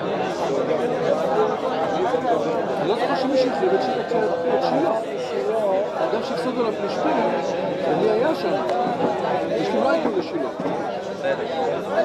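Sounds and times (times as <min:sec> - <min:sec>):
hubbub of men studying aloud: 0:00.0 - 0:12.0.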